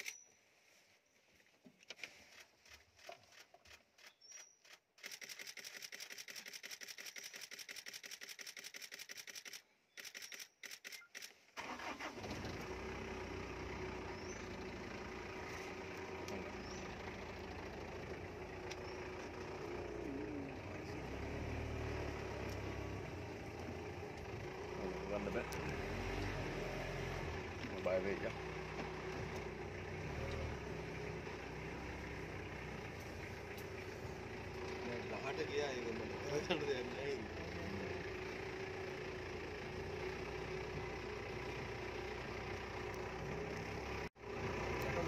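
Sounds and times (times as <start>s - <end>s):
camera shutter burst: 4.4s - 11.4s
jeep engine running: 11.6s - 45.0s.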